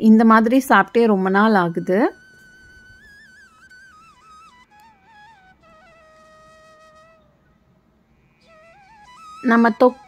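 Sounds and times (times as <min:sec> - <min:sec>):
flute holding long note: 0:01.2 - 0:07.4, 0:08.4 - 0:10.0.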